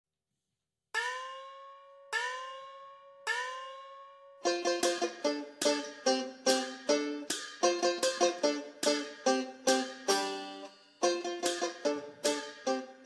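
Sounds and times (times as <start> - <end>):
banjo plucking and strumming: 1.0 - 13.0.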